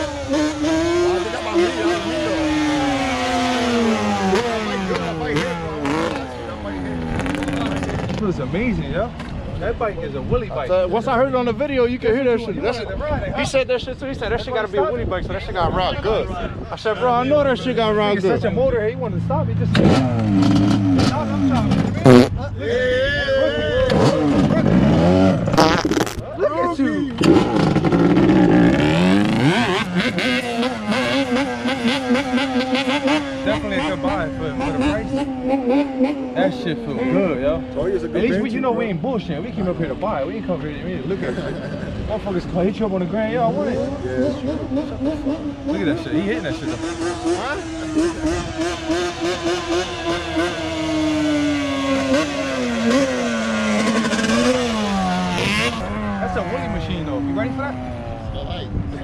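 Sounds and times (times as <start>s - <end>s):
two-stroke motorcycle engine revving: 0.0s - 9.5s, 17.3s - 22.6s, 23.8s - 26.3s, 27.1s - 40.1s, 43.0s - 59.0s.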